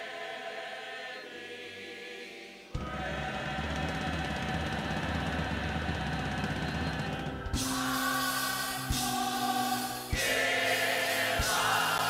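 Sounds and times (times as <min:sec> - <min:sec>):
choir singing held chord: 0:00.0 - 0:12.0
church band playing: 0:02.8 - 0:12.0.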